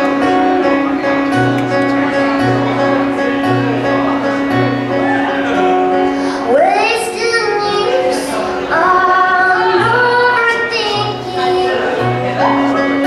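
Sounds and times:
acoustic guitar: 0.0s - 13.0s
woman singing: 6.5s - 12.7s.

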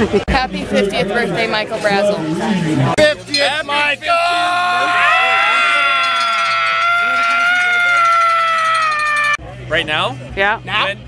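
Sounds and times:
men shouting together: 4.0s - 9.4s.

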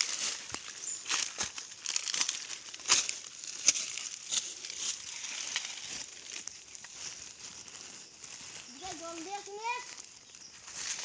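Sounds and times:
dry leaves crackling and rustling: 0.0s - 11.0s
leaves crunching: 0.0s - 11.0s.

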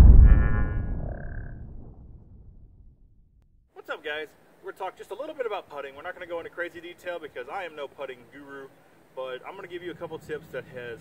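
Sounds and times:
deep boom: 0.0s - 3.6s.

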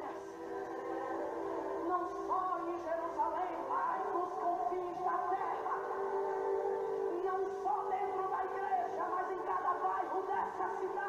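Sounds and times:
person singing gospel song: 0.0s - 11.0s.

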